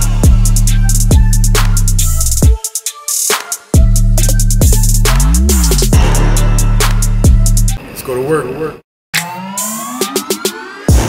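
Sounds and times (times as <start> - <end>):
rising synthetic tone sweep: 9.2 - 11.0.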